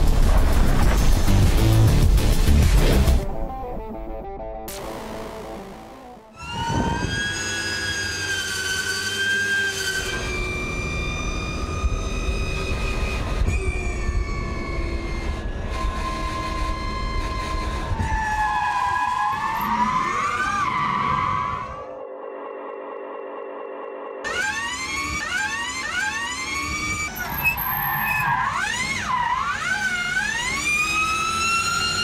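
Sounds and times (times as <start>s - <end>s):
electric motors whining: 4.8s - 22.4s, 24.2s - 32.0s.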